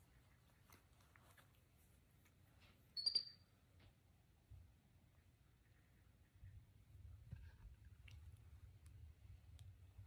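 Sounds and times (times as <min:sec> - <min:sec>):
monkey squeaking: 0:03.0 - 0:03.4.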